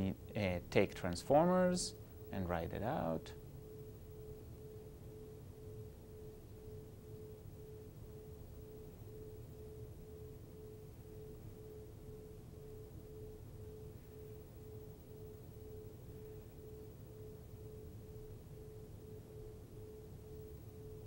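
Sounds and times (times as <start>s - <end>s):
mid-pitched hum: 0.0s - 21.0s.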